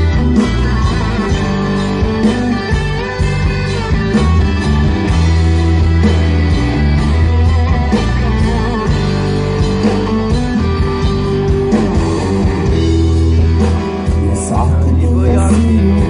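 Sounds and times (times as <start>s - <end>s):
drums: 0.0s - 16.0s
electric guitars: 0.0s - 16.0s
pulsing bass line: 0.0s - 16.0s.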